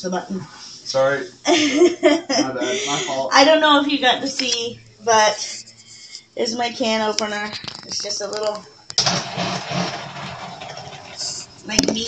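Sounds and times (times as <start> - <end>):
can opener motor buzzing: 9.0 - 11.7.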